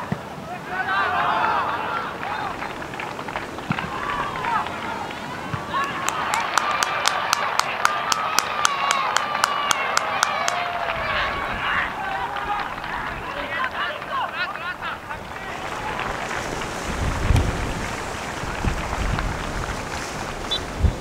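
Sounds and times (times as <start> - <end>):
crowd and players shouting: 0.0 - 18.6
spectators clapping in unison: 1.2 - 20.5.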